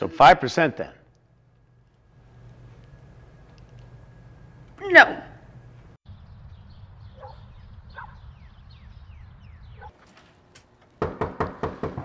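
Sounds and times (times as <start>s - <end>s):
low hum: 1.0s - 10.6s
knocking on a door: 11.0s - 12.0s.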